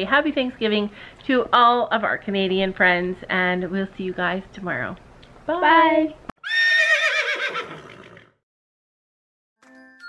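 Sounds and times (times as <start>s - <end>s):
horse whinnying: 6.4s - 8.4s.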